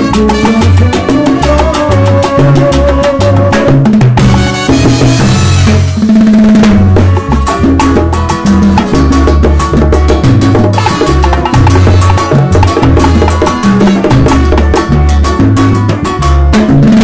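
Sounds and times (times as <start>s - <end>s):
hand drums: 0.0s - 17.0s
salsa band playing: 0.0s - 17.0s.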